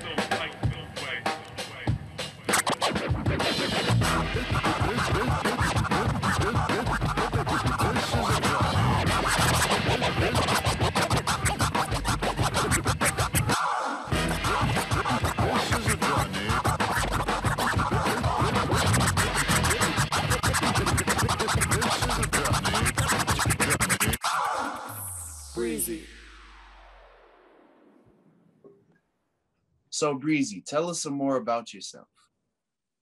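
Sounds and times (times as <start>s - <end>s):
dj scratching: 0.0s - 26.2s
hip hop beat: 0.0s - 26.2s.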